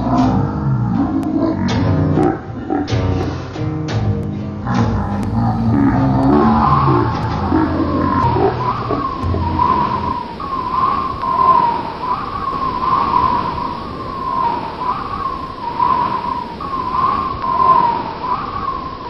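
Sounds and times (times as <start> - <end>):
steady hiss: 0.0 - 19.0
wavering high tone: 4.7 - 19.0.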